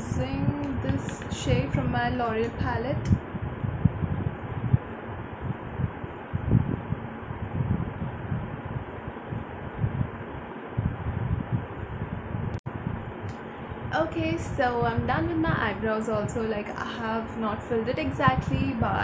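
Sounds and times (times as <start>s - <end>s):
low rumbles and thumps: 0.0s - 19.0s.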